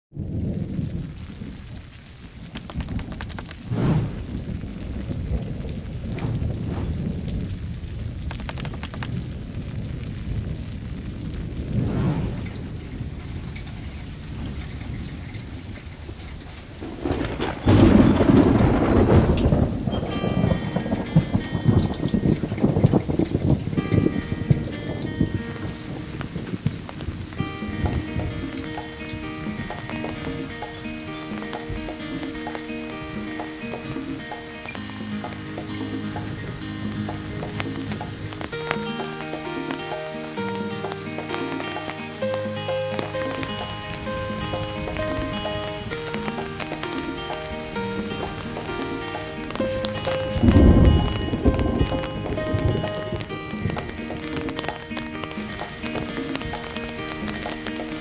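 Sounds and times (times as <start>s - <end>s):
steady rain falling: 0.1s - 58.0s
thunder rumbling: 0.1s - 58.0s
soft music with held notes: 16.8s - 58.0s.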